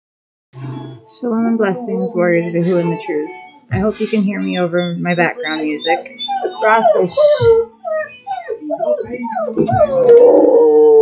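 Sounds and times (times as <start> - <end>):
dog howling and whimpering: 4.3 - 11.0.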